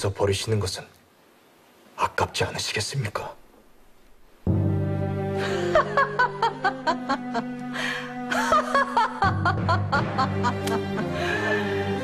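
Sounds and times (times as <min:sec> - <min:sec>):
dramatic background music: 0:04.5 - 0:12.0
woman laughing: 0:05.4 - 0:12.0.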